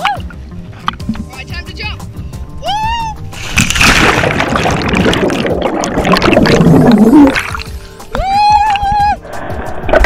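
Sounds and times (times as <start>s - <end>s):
person yelling: 2.6s - 3.2s, 8.2s - 9.2s
underwater rushing and bubbling: 3.2s - 10.0s
loud splash into pool: 3.5s - 6.7s.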